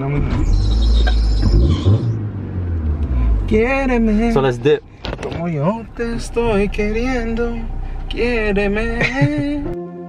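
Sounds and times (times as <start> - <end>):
low car rumble: 0.0 - 9.8
men talking and laughing: 8.9 - 9.7.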